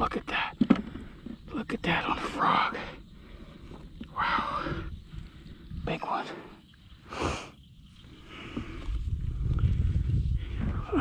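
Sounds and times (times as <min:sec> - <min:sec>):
wind rumble on microphone: 0:03.5 - 0:11.0.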